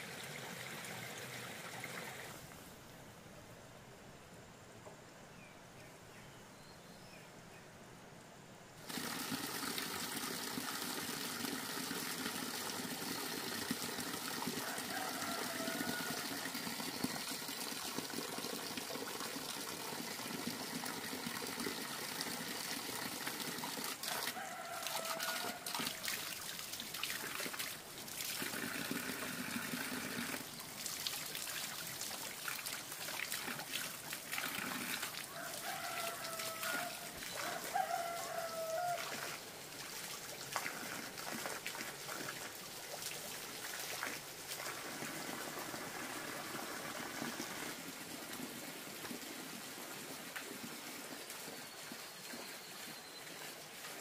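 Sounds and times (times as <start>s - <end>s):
running water hiss: 0.0s - 3.3s, 8.8s - 54.0s
rooster crowing: 14.5s - 16.8s, 24.0s - 26.0s, 35.3s - 39.4s.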